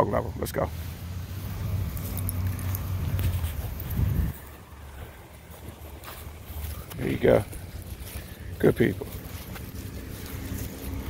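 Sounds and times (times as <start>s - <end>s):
low rumbling movement noise: 0.3s - 11.0s.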